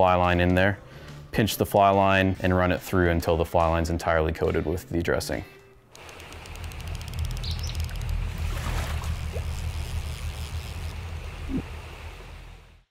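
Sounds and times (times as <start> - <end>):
bird chirps: 7.3 - 7.9
rushing river water: 8.2 - 12.5.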